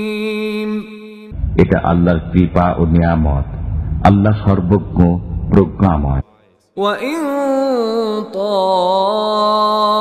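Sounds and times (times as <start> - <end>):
man chanting melodically: 1.3 - 7.2.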